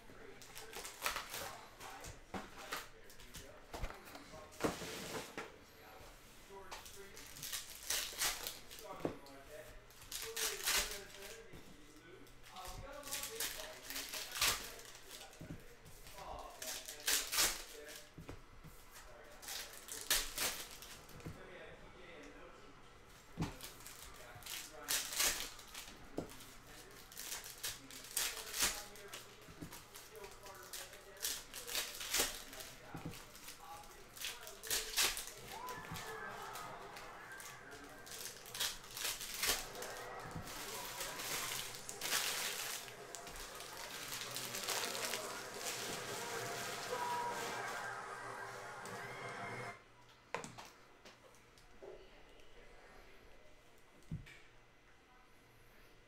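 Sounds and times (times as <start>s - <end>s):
foil packs tearing and crinkling: 0.2s - 2.0s, 6.8s - 9.0s, 10.1s - 11.5s, 12.5s - 15.4s, 16.0s - 18.1s, 19.3s - 21.0s, 23.5s - 47.4s
cards riffling: 0.2s - 4.2s, 6.7s - 9.1s, 10.0s - 11.6s, 16.0s - 18.1s, 23.4s - 47.4s.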